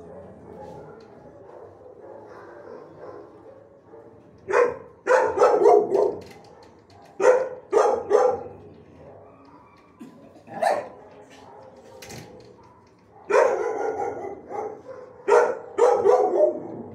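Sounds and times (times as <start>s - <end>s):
dog barking: 0.0s - 9.8s, 10.5s - 16.9s.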